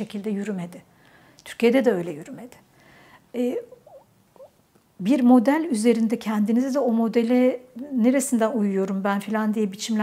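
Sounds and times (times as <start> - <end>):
faint squeaky mouth sounds: 3.6 - 4.6.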